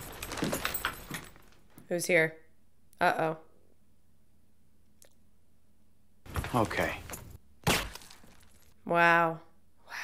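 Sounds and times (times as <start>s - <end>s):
keys jangling: 0.0s - 1.4s
paper bag rustling: 0.0s - 1.6s.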